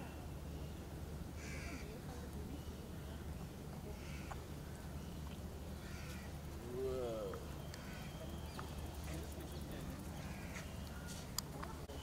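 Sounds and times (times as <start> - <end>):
bird calling: 2.5 - 12.0.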